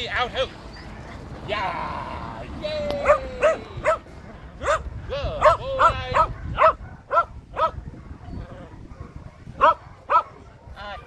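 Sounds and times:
dog barking: 3.0 - 11.0.

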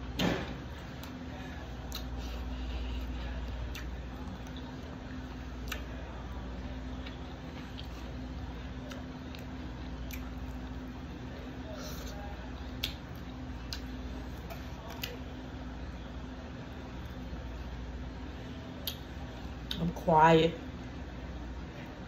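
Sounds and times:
low room hum: 0.0 - 22.0.

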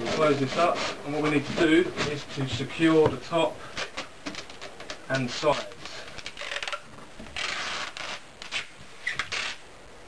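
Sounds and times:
cardboard rubbing: 0.0 - 4.8, 5.4 - 9.6
packing tape pulled off roll: 3.7 - 9.6.

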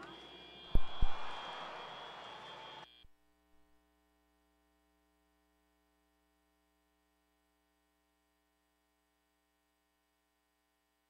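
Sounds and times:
crowd hubbub: 0.0 - 2.9
sharp thump: 0.8 - 1.4.

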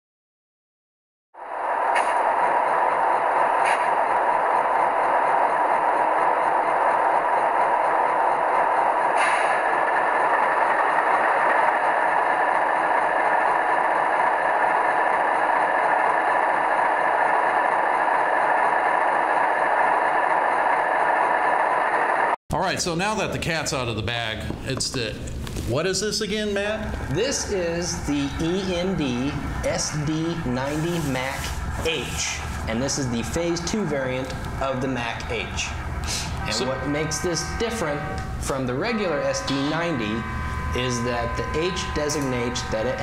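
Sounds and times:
diesel locomotive engine drone: 1.4 - 23.2, 25.7 - 43.0
train running noise: 1.4 - 43.0.

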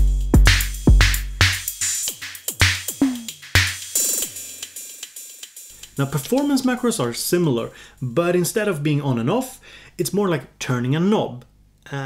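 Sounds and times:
drum machine hit: 0.0 - 5.1.

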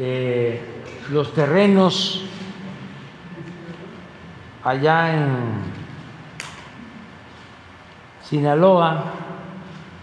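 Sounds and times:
hall background noise: 0.0 - 10.0.

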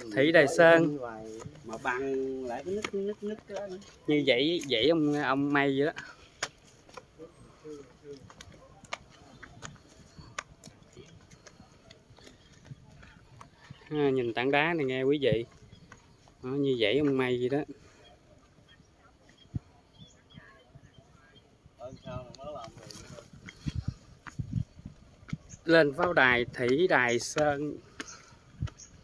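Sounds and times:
footsteps on stone steps: 0.2 - 19.6, 22.1 - 29.0
faint voices: 6.0 - 24.2.

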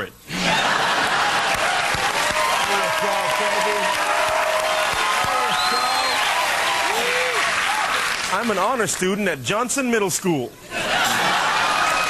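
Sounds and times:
audience cheering: 0.4 - 8.5, 10.8 - 12.0.

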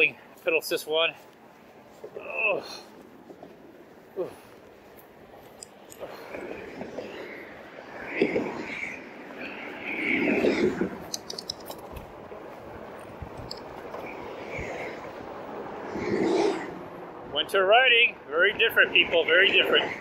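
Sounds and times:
rattling clicks: 11.0 - 12.0.

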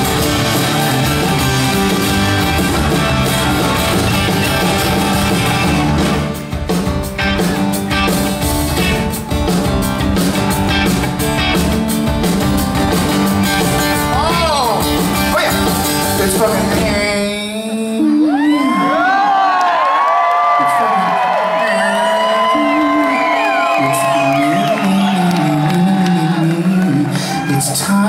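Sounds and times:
acoustic guitars strummed: 0.0 - 17.5
live rock music: 0.0 - 19.4, 20.6 - 28.0.

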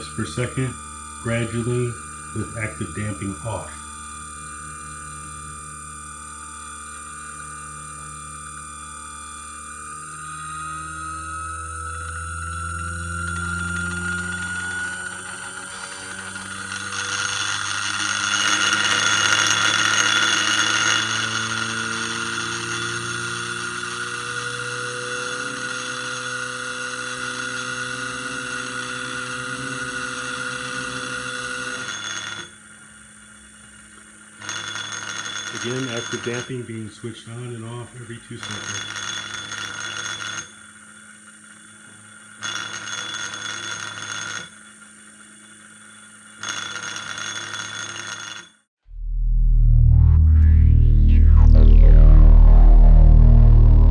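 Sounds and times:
stepper motor whine: 0.0 - 48.2, 48.8 - 53.9.

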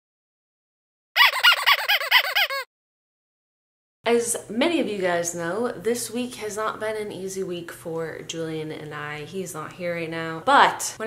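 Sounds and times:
high rising and falling chirps: 1.2 - 2.6.

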